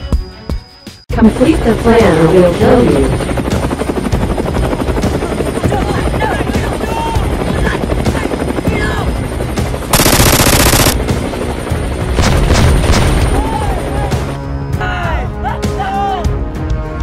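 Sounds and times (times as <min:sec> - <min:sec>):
helicopter rotor chopping: 0:01.3 - 0:14.4.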